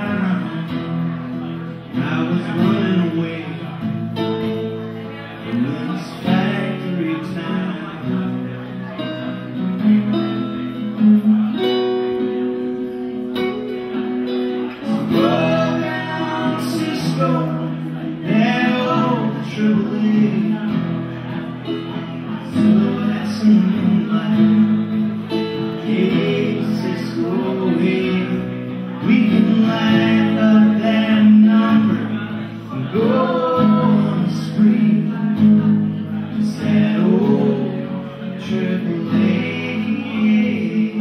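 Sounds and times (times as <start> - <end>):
man singing: 0.0 - 11.7, 14.0 - 41.0
acoustic guitar strumming: 0.0 - 41.0.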